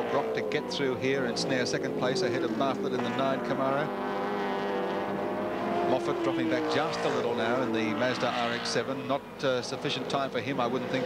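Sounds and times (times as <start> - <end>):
racing car engines droning: 0.0 - 11.0.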